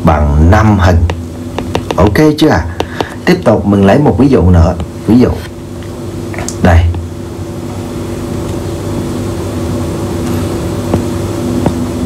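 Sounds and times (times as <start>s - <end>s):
background hum with held tones: 0.0s - 12.0s.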